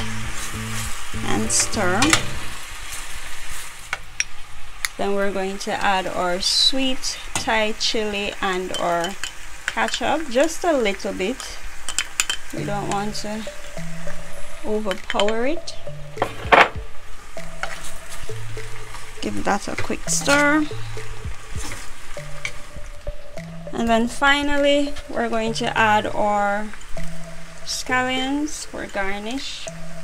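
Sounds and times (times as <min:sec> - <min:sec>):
sizzling in a pan: 0:00.1 - 0:16.0, 0:16.9 - 0:30.0.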